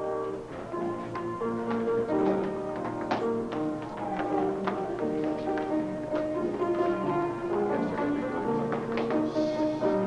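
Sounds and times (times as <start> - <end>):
music with held notes: 0.0 - 10.0.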